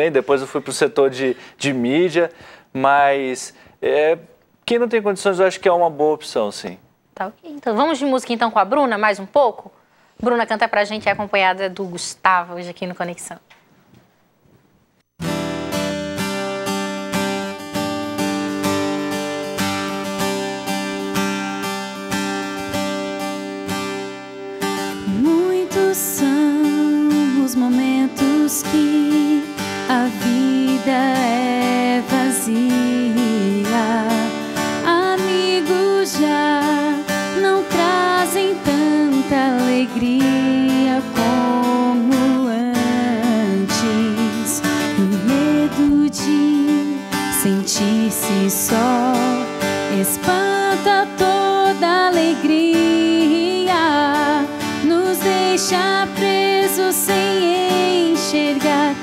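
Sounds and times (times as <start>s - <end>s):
acoustic guitar strumming: 15.2s - 59.0s
woman singing: 24.8s - 59.0s.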